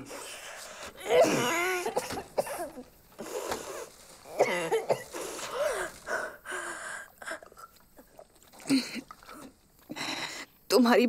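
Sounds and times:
woman moaning: 1.0 - 2.0
water pouring: 7.4 - 10.0.

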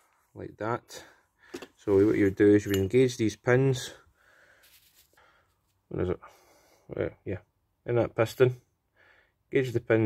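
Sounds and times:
man speaking: 0.4 - 1.2, 1.8 - 4.0, 5.9 - 6.3, 6.9 - 8.6, 9.5 - 10.0.

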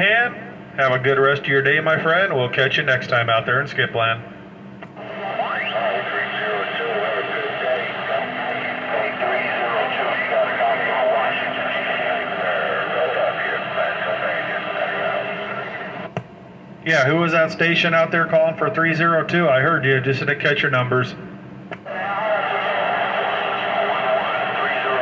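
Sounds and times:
radio static: 4.8 - 16.2, 21.8 - 25.0
garbled radio voices: 4.9 - 16.1, 21.8 - 25.0
rising radio whistle: 5.0 - 16.1, 21.8 - 25.0.

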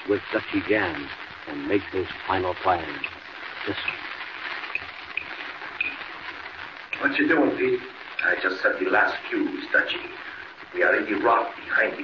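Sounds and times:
recording hiss: 0.0 - 12.0.

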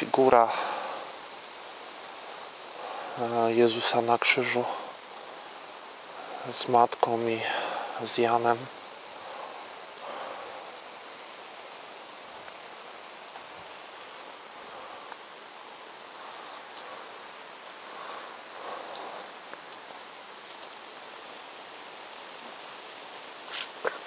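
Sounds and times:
outdoor background hiss: 0.0 - 24.0.

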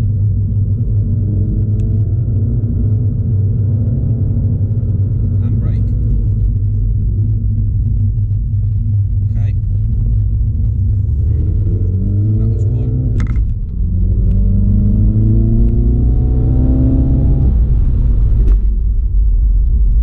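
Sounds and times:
car engine accelerating: 0.0 - 20.0
low road rumble: 0.0 - 20.0.

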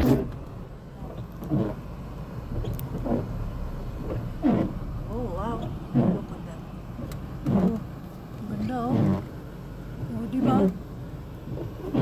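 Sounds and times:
car engine rumble from inside: 0.0 - 12.0.

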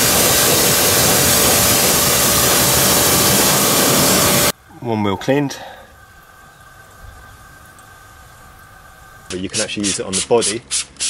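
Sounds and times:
steady high tones: 0.0 - 4.5
mechanical hum: 0.0 - 11.0.

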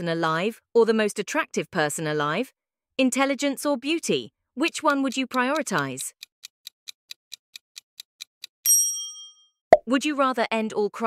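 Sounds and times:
rapid clock ticks: 4.6 - 8.6.

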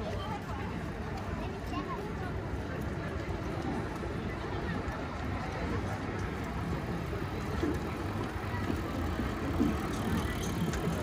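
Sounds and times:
passers-by chatter: 0.0 - 11.0.

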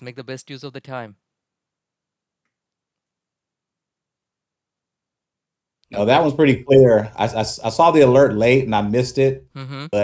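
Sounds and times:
man speaking: 0.0 - 1.2, 5.9 - 10.0.

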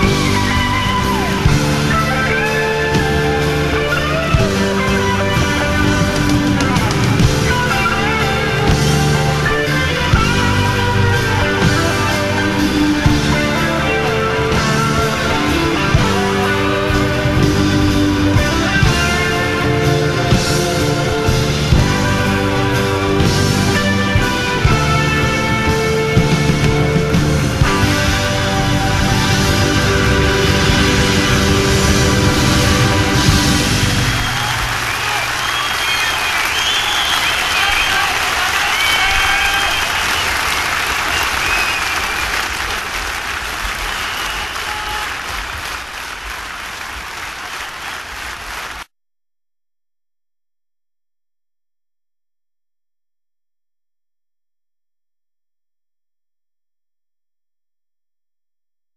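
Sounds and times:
audience applauding and cheering: 0.0 - 48.9
shouts from audience: 33.7 - 45.9.

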